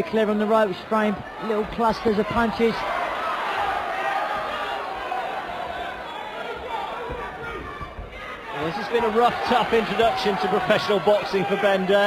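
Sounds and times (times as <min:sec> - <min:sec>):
crowd hubbub: 0:00.8 - 0:12.0
people shouting: 0:01.4 - 0:12.0.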